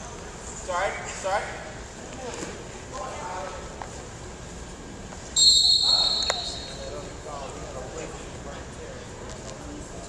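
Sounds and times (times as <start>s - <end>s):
referee's whistle blast: 5.4s - 6.9s.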